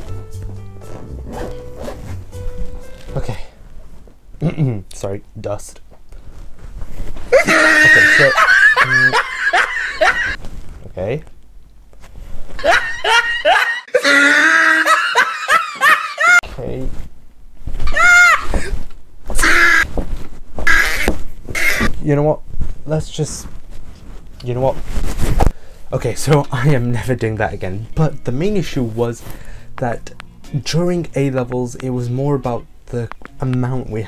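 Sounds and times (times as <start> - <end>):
nylon bag rustling: 0.8 - 3.3
man squealing: 7.3 - 10.4, 12.6 - 16.4, 17.8 - 18.7, 19.4 - 19.9, 20.7 - 21.9.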